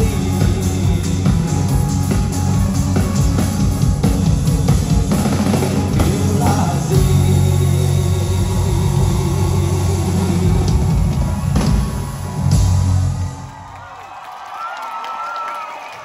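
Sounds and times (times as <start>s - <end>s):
live band playing loudly: 0.0s - 13.6s.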